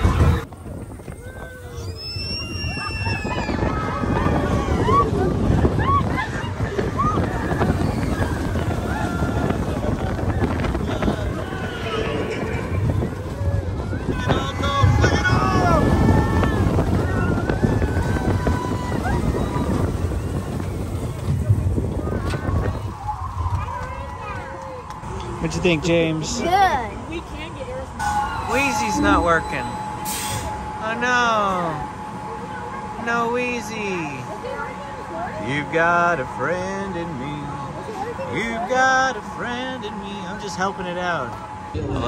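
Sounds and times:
wind rushing over microphone: 0.0 - 29.6
riders whooping and shouting: 1.0 - 24.9
low rumble: 2.5 - 30.8.

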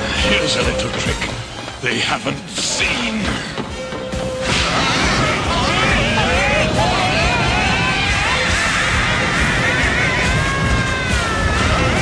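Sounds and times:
low rumble: 4.4 - 12.0.

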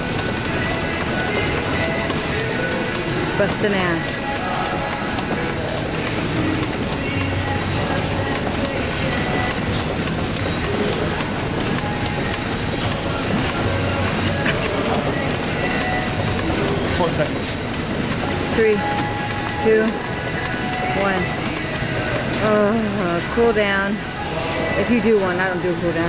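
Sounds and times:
elliptical trainer rhythmic clatter: 0.0 - 26.0.

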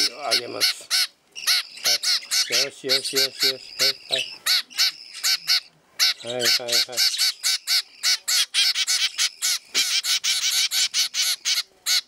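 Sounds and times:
finch chicks begging calls: 0.0 - 12.0.

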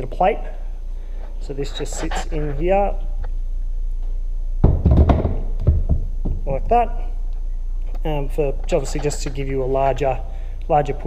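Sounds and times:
jack foot thunking on plastic base: 4.6 - 6.5.

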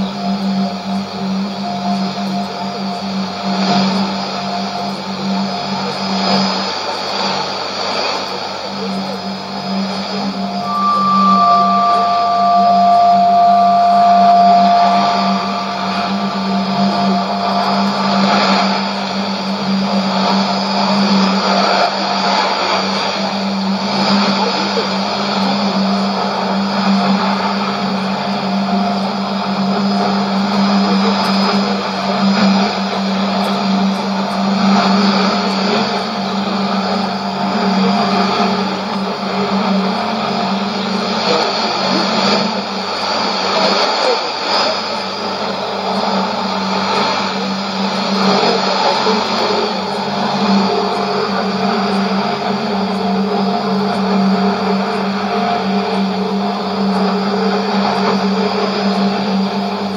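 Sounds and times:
steady low hum: 0.0 - 59.9
radio static: 8.4 - 23.2
radio test tones: 8.7 - 28.4.

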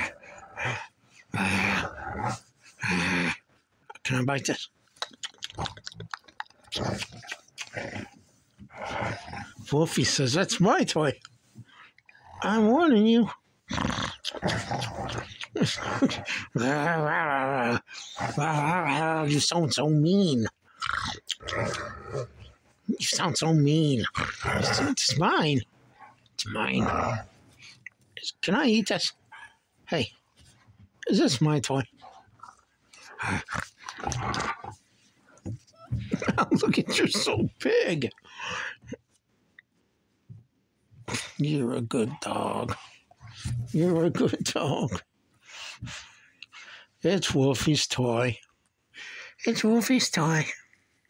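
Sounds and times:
puppy growling: 13.7 - 16.8, 20.8 - 23.1, 24.0 - 25.3, 32.0 - 34.8.

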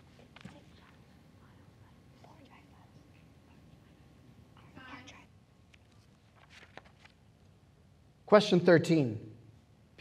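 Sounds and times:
students whispering: 0.2 - 5.4.

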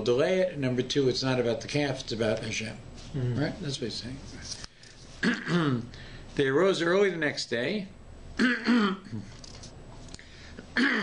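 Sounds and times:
man clearing his throat: 5.2 - 5.9, 8.4 - 9.4, 10.7 - 11.0.

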